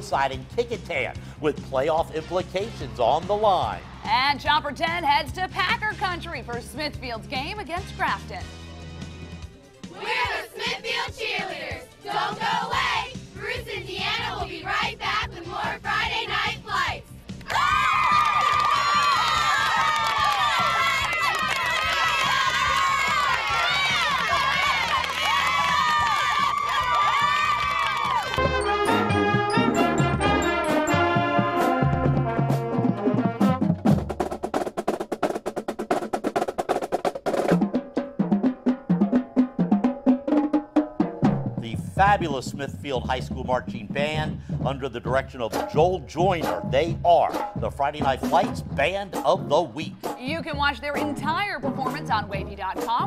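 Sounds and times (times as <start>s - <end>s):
cheerleaders screaming and cheering: 9.8s - 31.9s
clarinets and brass: 28.4s - 33.7s
snare and bass drum strokes: 29.8s - 53.0s.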